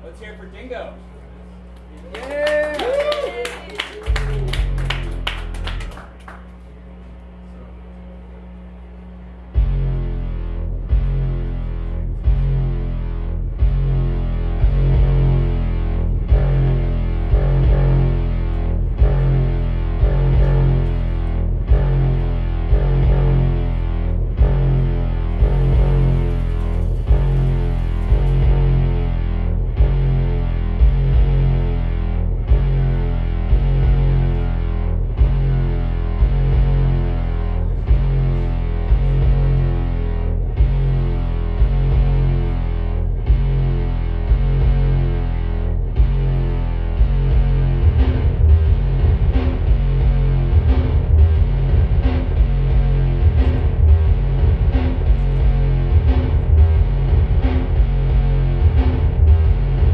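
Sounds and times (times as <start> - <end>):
distorted low electronic drone: 0.0 - 59.9.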